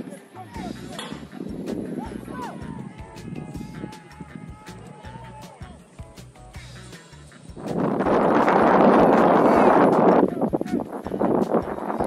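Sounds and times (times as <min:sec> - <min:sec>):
players shouting: 0:00.4 - 0:05.9.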